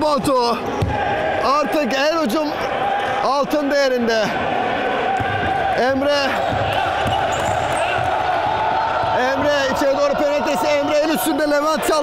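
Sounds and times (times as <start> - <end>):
indistinct voices in a hall: 0.0 - 12.0.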